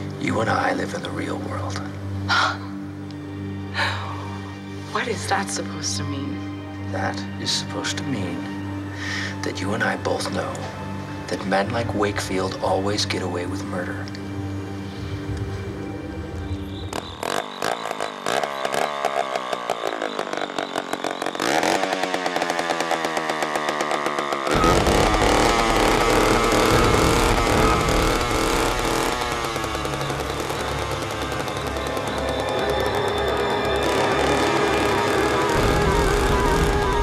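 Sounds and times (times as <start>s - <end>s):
film score music: 0.0s - 37.0s
chainsaw engine running: 16.6s - 37.0s.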